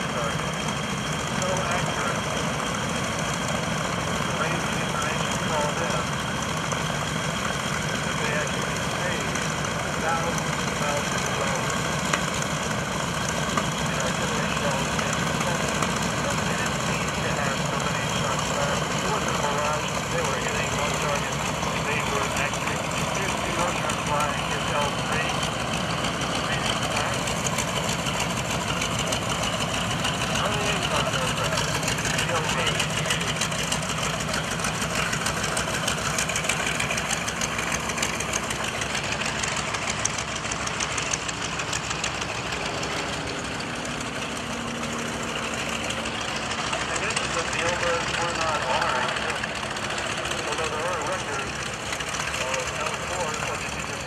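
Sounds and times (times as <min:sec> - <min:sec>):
propeller planes droning overhead: 0:00.0 - 0:54.0.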